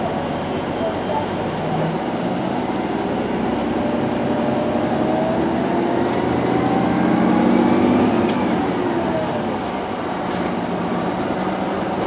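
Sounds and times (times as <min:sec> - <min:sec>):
wheels rumbling on rail: 0:00.0 - 0:12.0.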